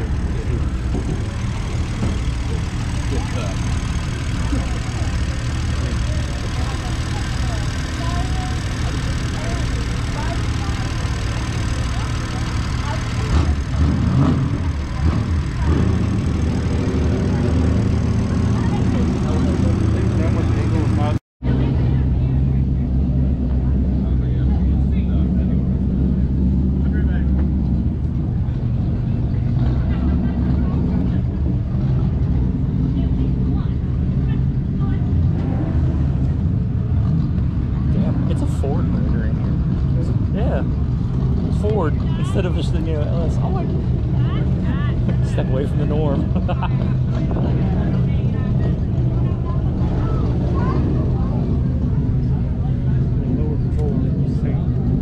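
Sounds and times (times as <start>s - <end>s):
engine idling: 0.0s - 55.0s
voices in background: 0.0s - 55.0s.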